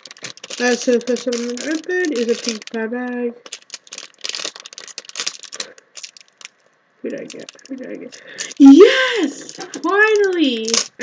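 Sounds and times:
foil packet crinkling and tearing: 0.0 - 11.0.

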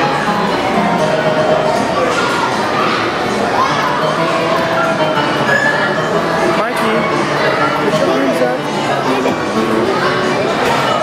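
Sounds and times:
electronic music from kiddie ride: 0.0 - 11.0
hubbub of indoor play area: 0.0 - 11.0.

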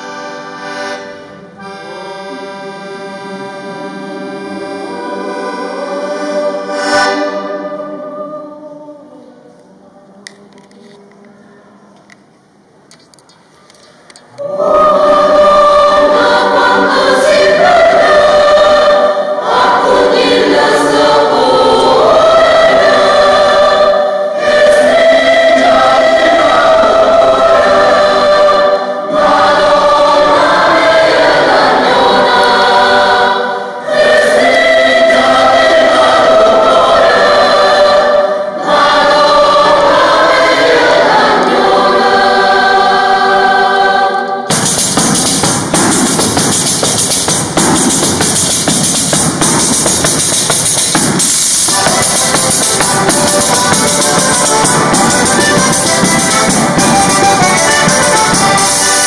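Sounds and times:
mixed choir singing: 0.0 - 10.7, 14.3 - 59.0.

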